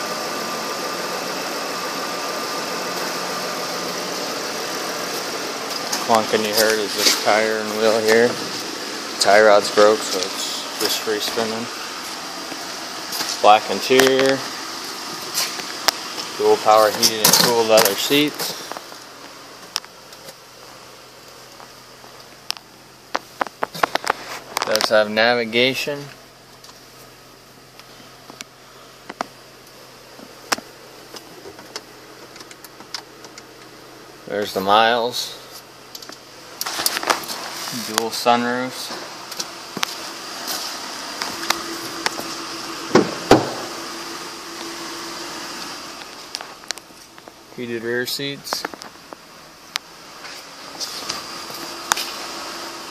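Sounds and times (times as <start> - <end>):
car engine idling hum: 0.0 - 52.9
heavy thumps: 42.9 - 43.7.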